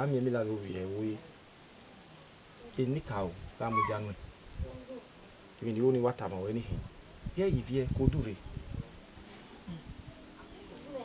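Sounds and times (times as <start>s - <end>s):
man speaking: 2.8s - 4.2s
faint high chirps: 3.6s - 5.6s.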